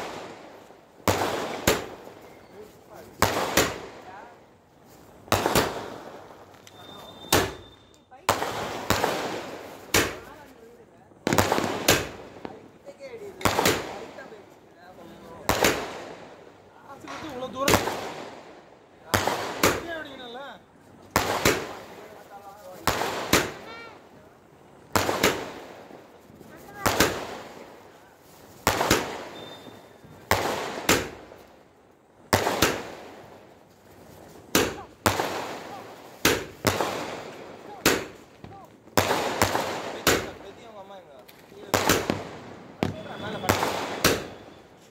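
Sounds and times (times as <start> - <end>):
fireworks hiss: 0.0 - 20.1, 20.9 - 44.9
fireworks bangs: 0.0 - 44.9.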